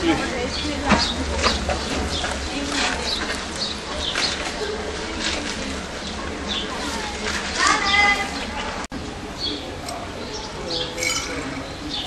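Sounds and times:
background chatter of people: 0.0 - 12.0
high-pitched call: 11.0 - 11.8.

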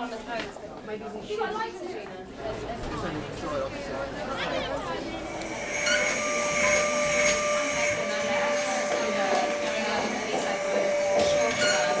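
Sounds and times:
vacuum cleaner whining: 4.9 - 12.0.

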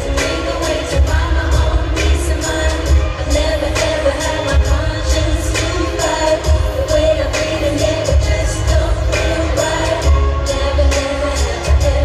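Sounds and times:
live pop music: 0.0 - 12.0
women singing: 0.0 - 12.0.

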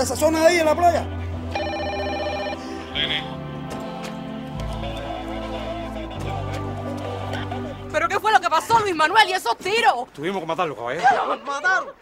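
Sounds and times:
background music: 0.0 - 10.1
telephone ringing: 1.5 - 2.8.

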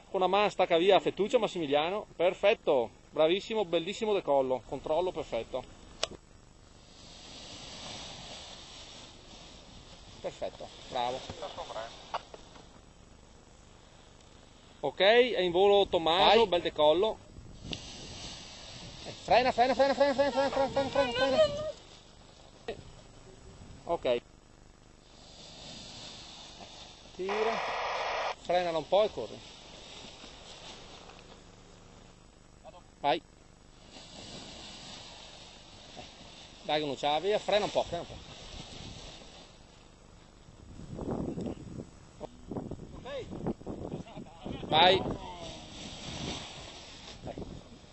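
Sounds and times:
paraglider wing rustling: 6.8 - 12.8, 17.5 - 22.6, 29.2 - 31.4, 33.7 - 39.8, 44.8 - 47.9
wind on microphone: 40.7 - 46.6
paraglider wing fabric rushing: 44.9 - 47.8.

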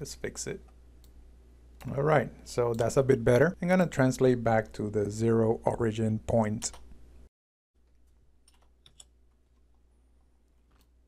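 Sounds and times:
computer keyboard clicks: 8.5 - 9.1.

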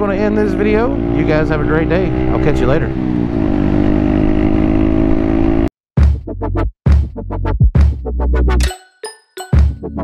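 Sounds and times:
motorcycle engine cruising: 0.0 - 5.7.

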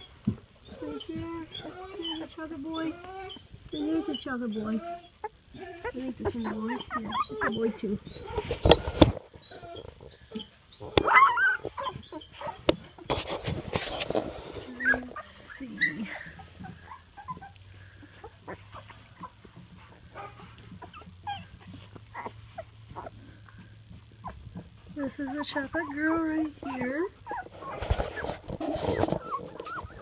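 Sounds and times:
faint low steady hum: 0.0 - 30.0
puppies squeaking and whimpering: 0.0 - 30.0
rustling from handling: 11.7 - 16.8, 24.4 - 30.0.

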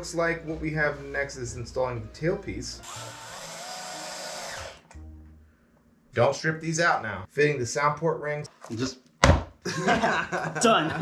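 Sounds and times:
cordless drill whirring: 2.8 - 4.9.

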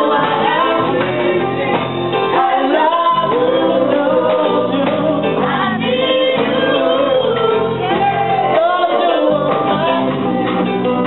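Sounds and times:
drums: 0.0 - 11.0
electric guitar: 0.0 - 11.0
voices singing gospel chorus: 0.0 - 11.0.

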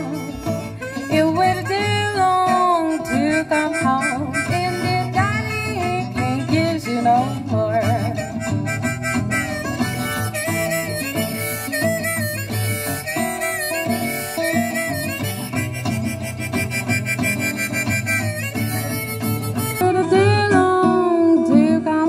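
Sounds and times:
harmonica bending notes: 0.0 - 21.0
acoustic guitar accompaniment: 0.0 - 22.0.

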